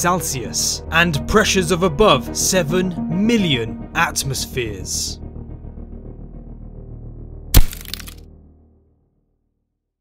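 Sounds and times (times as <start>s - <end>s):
low music drone: 0.0s - 9.4s
glass cracking: 7.6s - 8.2s.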